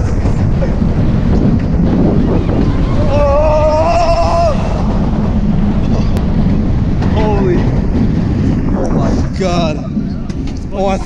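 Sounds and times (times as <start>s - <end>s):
wind rush on microphone: 0.0s - 11.0s
rider yelling: 2.5s - 5.2s
short falling shout: 2.6s - 5.0s.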